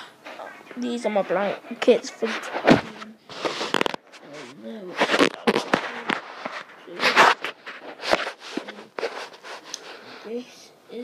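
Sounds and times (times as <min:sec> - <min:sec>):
microphone handling crackles: 0:02.2 - 0:09.7.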